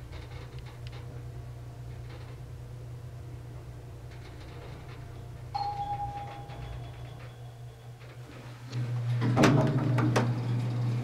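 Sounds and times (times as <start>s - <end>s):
low hum in elevator car: 0.0s - 11.0s
elevator arrival chime: 5.5s - 8.6s.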